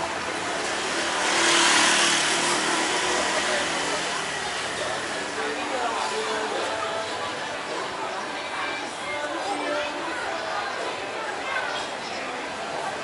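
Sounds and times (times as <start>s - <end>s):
motorbike passing: 0.0s - 5.6s
street chatter: 0.0s - 13.0s.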